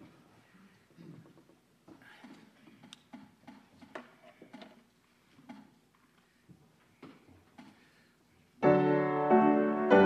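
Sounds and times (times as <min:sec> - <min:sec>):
people shifting and rustling: 0:00.0 - 0:08.4.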